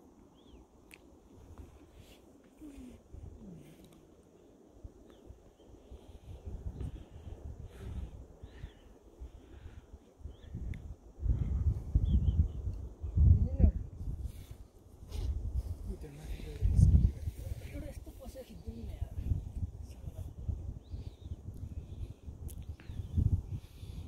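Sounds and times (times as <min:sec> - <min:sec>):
wind buffeting microphone: 0:04.8 - 0:24.0.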